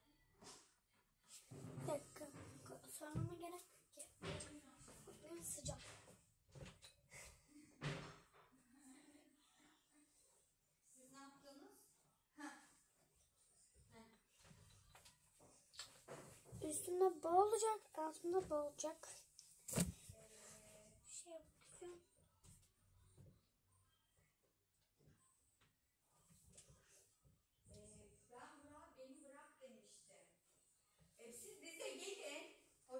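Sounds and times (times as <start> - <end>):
quiet knocks and thumps: 1.4 - 6.9, 7.8 - 8.6.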